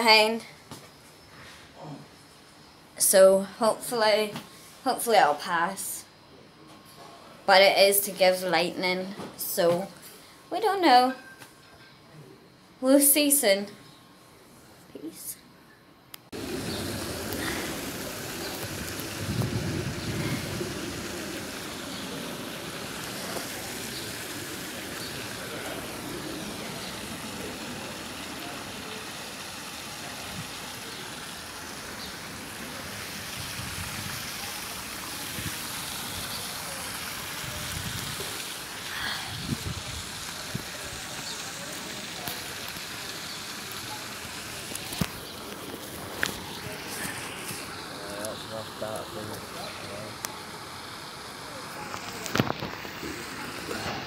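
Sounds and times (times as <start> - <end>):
light rain hissing: 16.3 - 54.0
low rumbles on microphone: 16.4 - 22.1.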